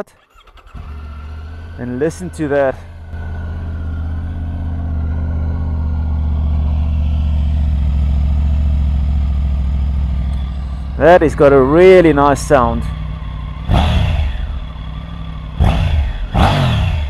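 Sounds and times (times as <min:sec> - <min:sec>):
motorcycle engine idling: 0:00.2 - 0:17.0.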